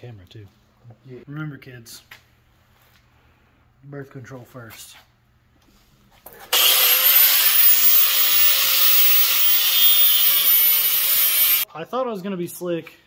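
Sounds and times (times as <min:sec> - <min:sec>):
angle grinder cutting metal: 0:06.5 - 0:11.6.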